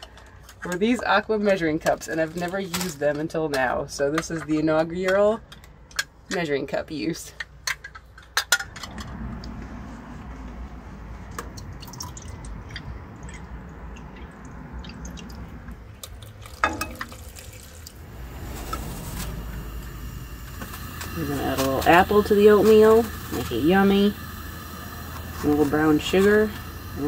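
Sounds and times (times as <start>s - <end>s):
water pouring into pot: 11.5s - 27.0s.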